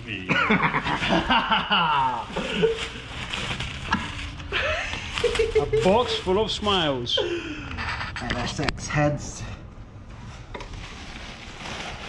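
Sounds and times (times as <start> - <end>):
men laughing: 0.2 - 3.1, 3.9 - 8.1.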